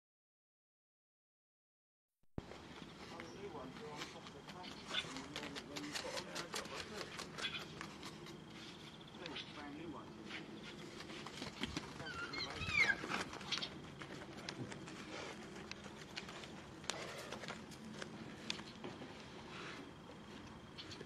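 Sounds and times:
high squeaky chirps: 0:12.0 - 0:13.8.

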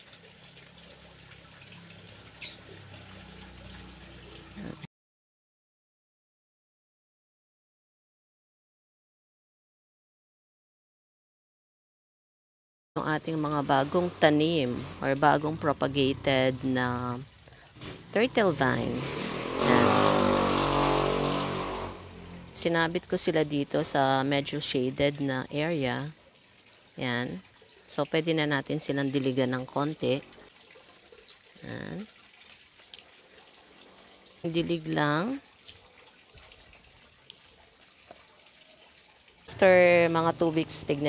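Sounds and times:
vehicle engine humming: 0:18.0 - 0:23.4
water dripping onto soil: 0:26.0 - 0:40.4.

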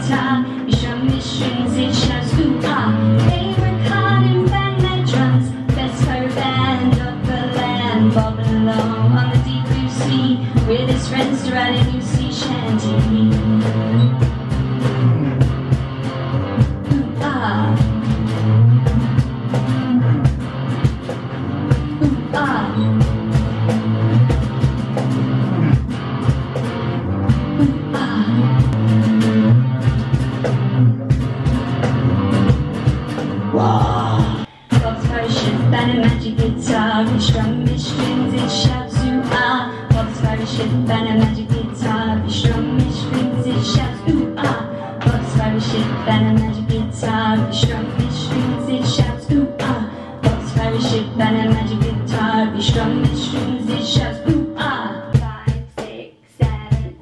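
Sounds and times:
drum beat: 0:00.0 - 0:54.6, 0:55.2 - 0:57.0
electric guitar: 0:00.0 - 0:55.4
bass line: 0:00.0 - 0:55.7.

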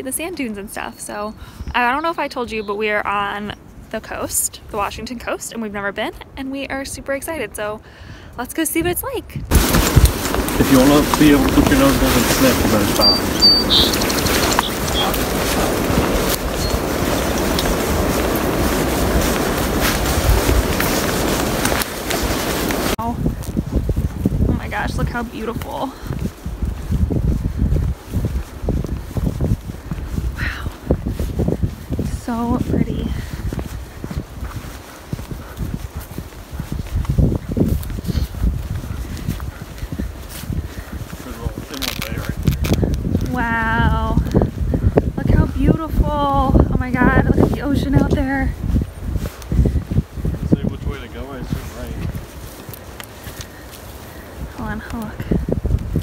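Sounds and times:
wind buffeting microphone: 0:00.0 - 0:56.0
footsteps on dirt and grass: 0:09.5 - 0:56.0
light handling clicks or footsteps: 0:51.7 - 0:55.1.

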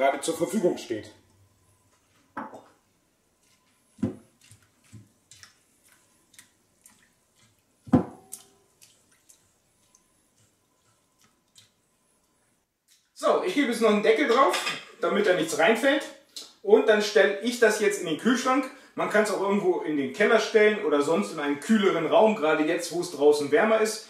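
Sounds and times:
water ticks and drips: 0:04.4 - 0:13.1.

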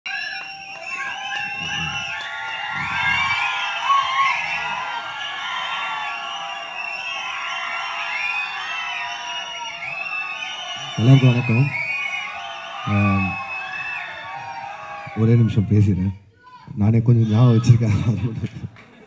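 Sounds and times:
audience cheering and screaming: 0:00.1 - 0:19.0.

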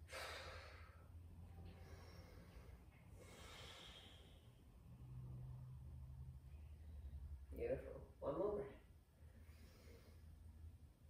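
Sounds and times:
person breathing softly: 0:00.0 - 0:05.2, 0:09.2 - 0:10.7
low steady hum: 0:00.0 - 0:11.0.

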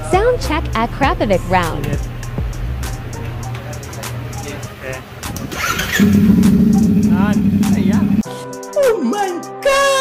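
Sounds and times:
motorcycle engine revving: 0:05.4 - 0:08.2.

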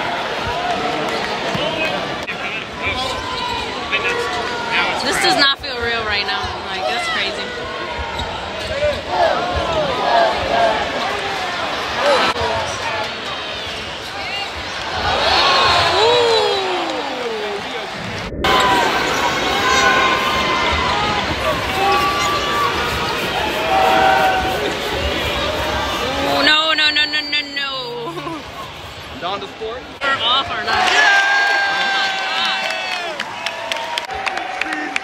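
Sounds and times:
arena crowd chatter: 0:00.0 - 0:35.0.

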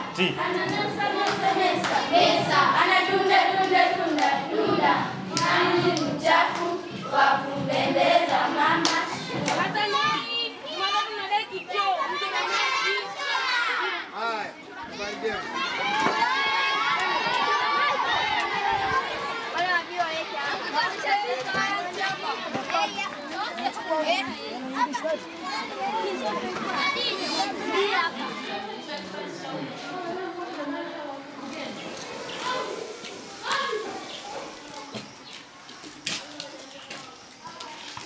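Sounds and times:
children talking and calling out: 0:00.0 - 0:38.0.

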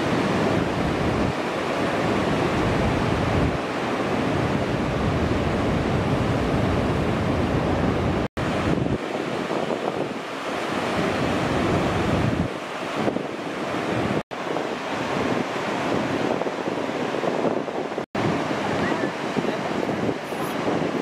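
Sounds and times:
ocean waves breaking: 0:00.0 - 0:21.0
wind rumbling on microphone: 0:00.0 - 0:21.0.

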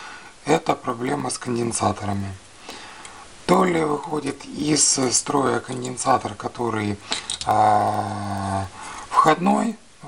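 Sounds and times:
man saying uhh: 0:07.5 - 0:08.8.

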